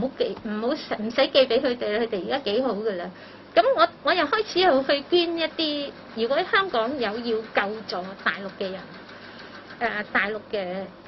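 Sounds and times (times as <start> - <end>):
woman speaking into microphones: 0.0 - 9.0, 9.8 - 11.0.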